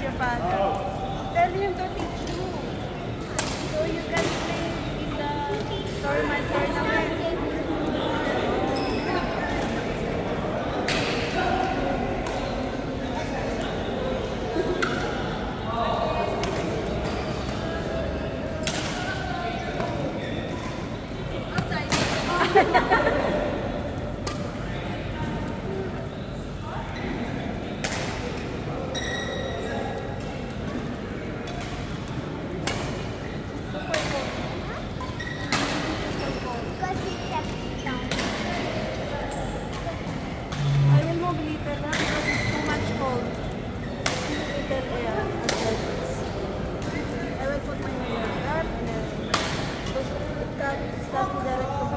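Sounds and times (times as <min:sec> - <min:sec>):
murmur of voices: 0:00.0 - 0:51.9.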